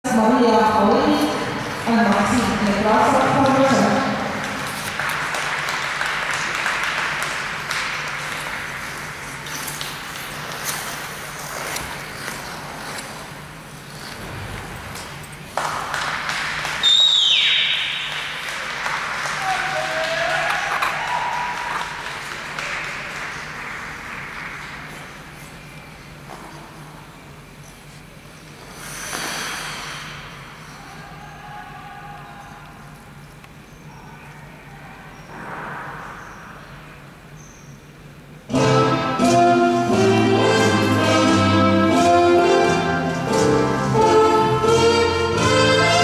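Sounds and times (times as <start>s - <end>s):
audience applause: 4.2s - 10.4s, 15.5s - 25.6s
loud high whistle: 16.8s - 18.3s.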